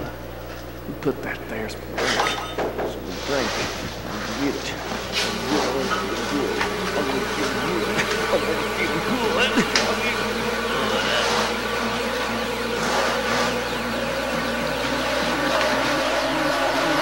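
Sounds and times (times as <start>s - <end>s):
steady buzzing drone: 0.0s - 17.0s
wavering gliding tones: 1.0s - 17.0s.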